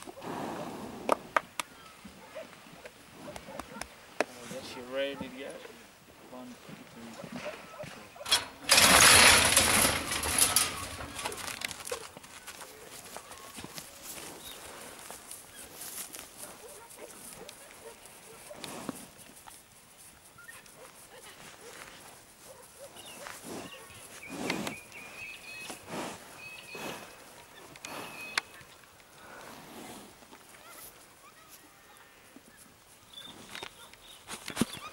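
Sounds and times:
scattered outdoor sounds: 0:00.0 - 0:34.9
metal gates clanging open: 0:08.2 - 0:11.7.

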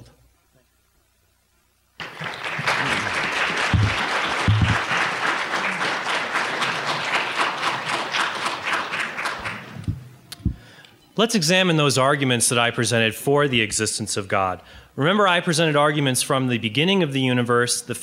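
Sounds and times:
audience applauding: 0:02.0 - 0:10.0.

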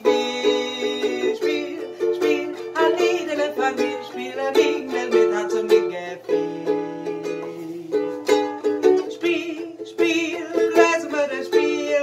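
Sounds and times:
ukulele strumming: 0:00.0 - 0:12.0
woman singing: 0:00.0 - 0:12.0.

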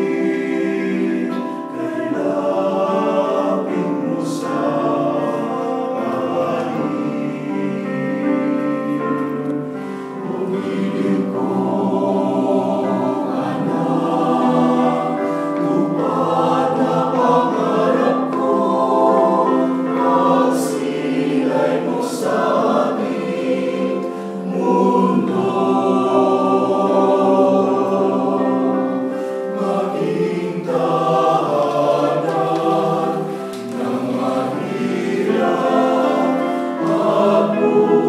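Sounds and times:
mixed choir singing: 0:00.0 - 0:38.0.

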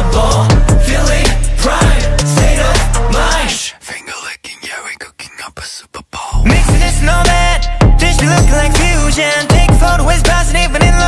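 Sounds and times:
man whispering: 0:03.5 - 0:06.6.

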